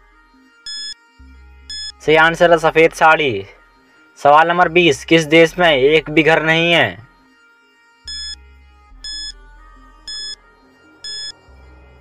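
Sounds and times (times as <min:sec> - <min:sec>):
soft background music: 0:00.0 - 0:12.0
short high timer beeps: 0:00.7 - 0:01.0, 0:01.7 - 0:01.9, 0:08.1 - 0:08.4, 0:09.1 - 0:09.3, 0:10.1 - 0:10.4, 0:11.0 - 0:11.3.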